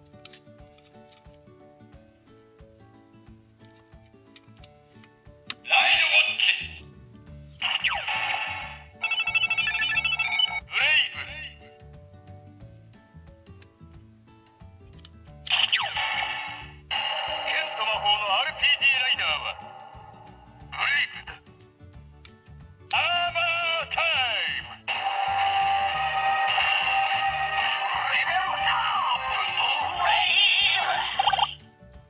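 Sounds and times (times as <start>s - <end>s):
toy recorded voice calls: 5.7s - 6.8s, 7.6s - 11.6s, 15.5s - 19.8s, 20.7s - 21.4s, 22.9s - 31.6s
tinny toy jingle music: 7.9s - 10.7s, 15.6s - 21.4s, 23.0s - 31.6s.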